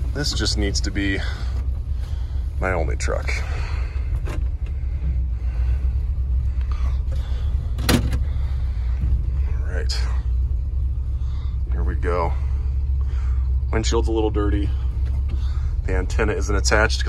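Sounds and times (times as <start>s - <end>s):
truck engine idling: 0.0s - 17.0s
parking brake handle clack: 7.7s - 8.3s.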